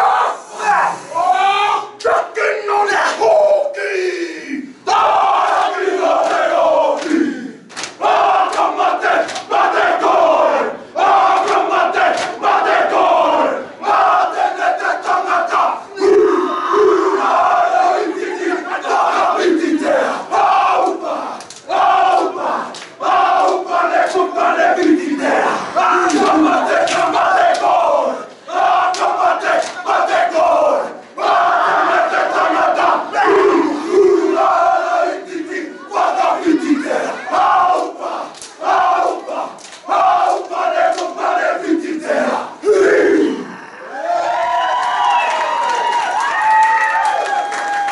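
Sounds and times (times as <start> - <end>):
men chanting in unison: 3.8 - 43.7.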